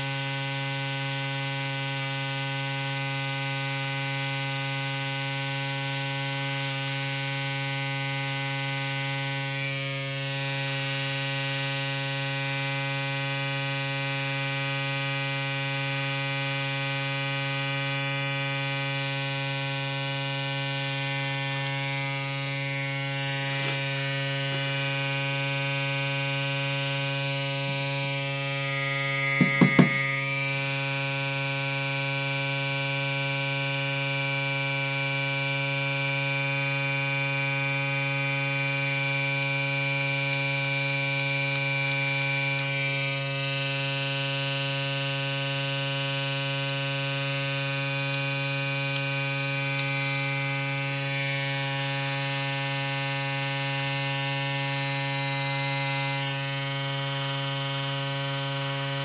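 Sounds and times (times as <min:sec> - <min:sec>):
airbrush compressor humming: 0:14.0 - 0:33.0
quick knocks: 0:29.4 - 0:30.0.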